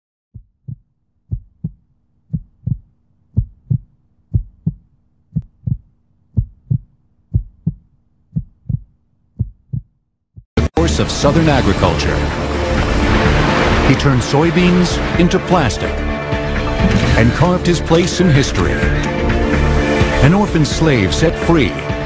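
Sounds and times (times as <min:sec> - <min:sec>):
heartbeat thumps: 0:00.3 - 0:10.5
faint low hum: 0:00.4 - 0:10.1.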